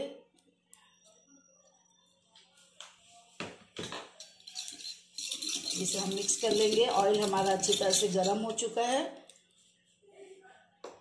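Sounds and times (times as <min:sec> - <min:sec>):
spoon stirring and scraping bowl: 0:03.9 - 0:09.0.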